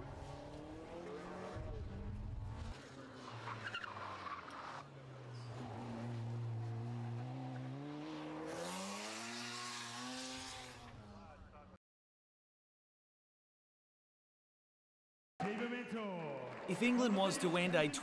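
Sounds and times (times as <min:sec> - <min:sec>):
car engine accelerating: 0:00.0 - 0:11.1.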